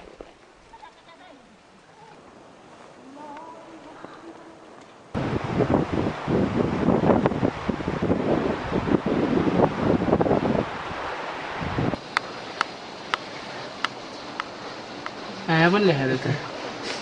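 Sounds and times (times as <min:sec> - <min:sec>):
wind buffeting microphone: 0:02.0 - 0:15.4.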